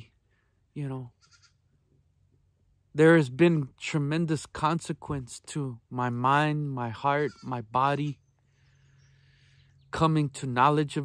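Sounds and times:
goat bleating: 1.1 - 1.7, 6.8 - 8.2.

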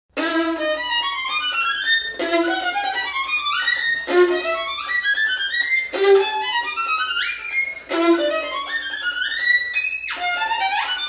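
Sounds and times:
fast solo violin passage: 0.1 - 11.0.

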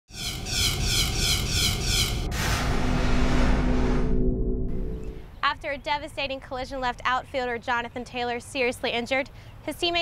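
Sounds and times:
low rumble: 1.4 - 5.6
pulsing jet-like whoosh: 2.0 - 5.3.

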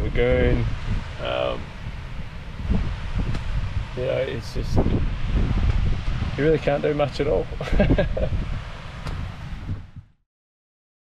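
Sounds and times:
wind buffeting microphone: 0.0 - 10.2.

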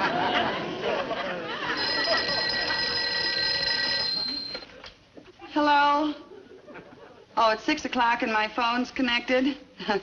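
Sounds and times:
telephone bell ringing: 1.7 - 4.8.

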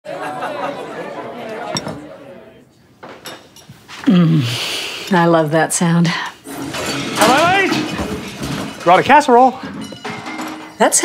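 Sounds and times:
indistinct chatter: 0.1 - 2.8.

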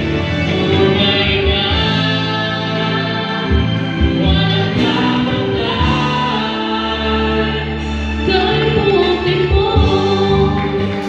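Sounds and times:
instrumental accompaniment: 0.0 - 11.0
man and woman singing: 0.4 - 11.0.

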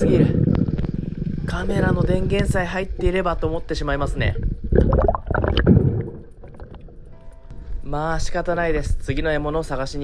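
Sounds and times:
underwater water sloshing: 4.2 - 7.4.

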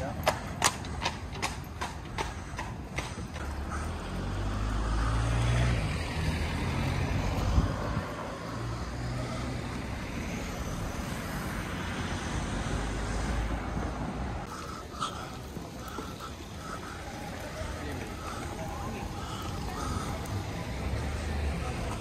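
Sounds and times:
horse hooves clip-clopping on asphalt: 0.0 - 3.6, 13.8 - 22.0
vehicle engine rumbling past: 3.4 - 14.5.

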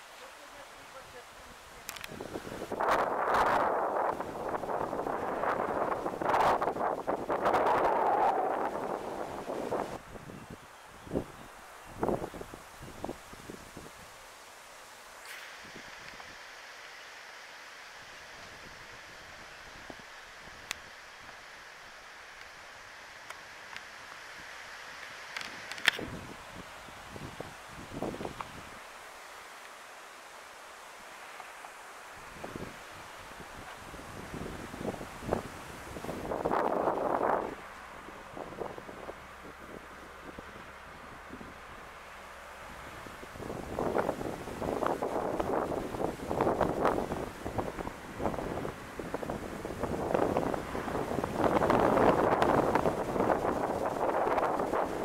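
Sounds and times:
wind gusting through trees: 0.0 - 55.0.

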